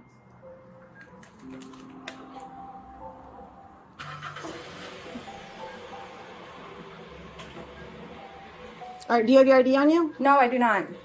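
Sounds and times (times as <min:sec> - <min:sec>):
faint music with held notes: 0:00.0 - 0:11.0
car engine outside: 0:02.4 - 0:09.0.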